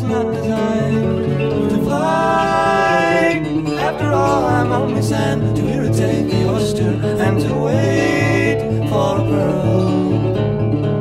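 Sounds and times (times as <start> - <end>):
country band music: 0.0 - 11.0
guitar: 0.0 - 11.0.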